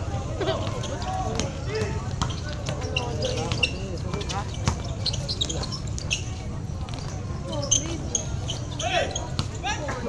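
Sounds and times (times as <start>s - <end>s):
crowd talking and calling out: 0.0s - 10.0s
basketball dribbling: 0.5s - 5.7s.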